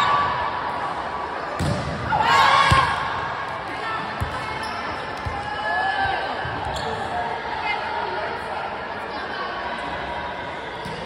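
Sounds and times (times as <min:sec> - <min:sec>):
players shouting and chatter: 0:00.0 - 0:11.0.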